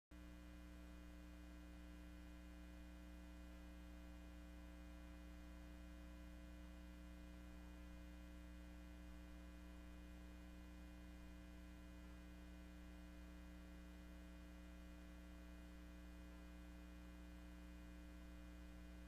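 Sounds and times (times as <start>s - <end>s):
faint electrical mains hum: 0.2s - 19.0s.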